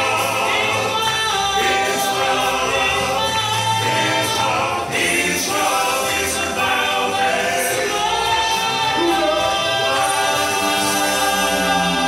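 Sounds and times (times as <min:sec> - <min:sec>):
male quartet singing in harmony: 0:00.0 - 0:12.0.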